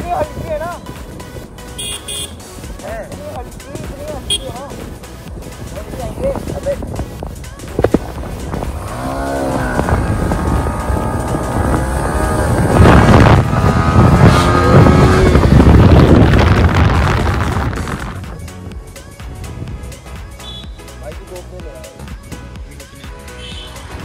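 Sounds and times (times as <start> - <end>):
motorcycles accelerating hard: 8.0 - 18.3.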